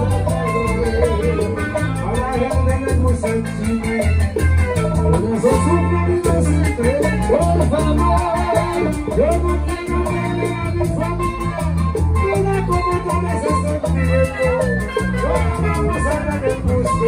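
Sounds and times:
live latin dance band: 0.0 - 17.0
man singing: 0.0 - 17.0
rapid percussion ticking: 0.0 - 17.0.

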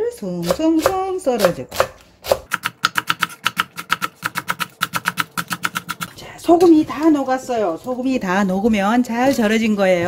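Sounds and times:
knife chopping on wooden board: 0.4 - 6.1.

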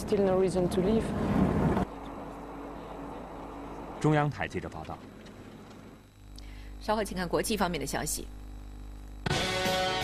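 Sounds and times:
road and engine noise in van: 0.0 - 4.0
steady hum with low tone: 0.0 - 10.0.

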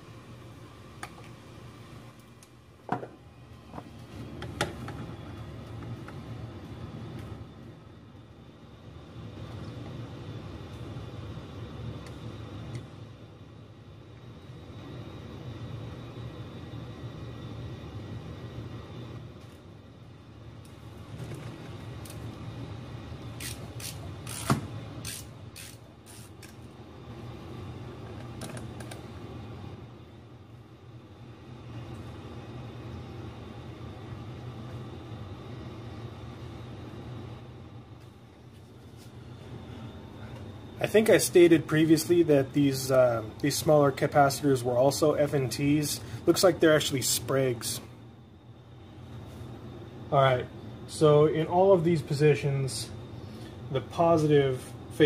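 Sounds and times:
furnace rumbling: 0.0 - 55.0.

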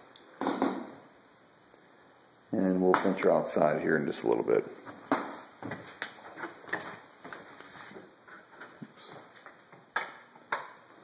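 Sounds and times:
footsteps on hardwood floor: 4.8 - 8.1.

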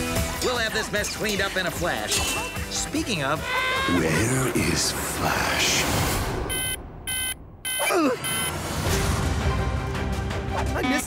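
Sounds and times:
digital alarm clock beeping: 6.5 - 8.6
person groaning: 7.8 - 8.2.

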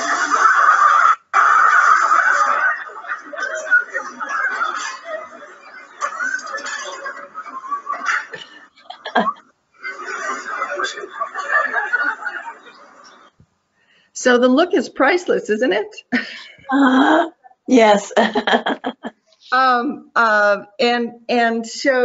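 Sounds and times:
voices: 0.0 - 13.4, 14.2 - 22.0.

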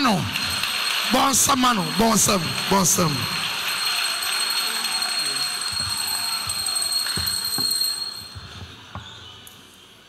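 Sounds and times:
crowd cheering and clapping: 0.0 - 8.6.

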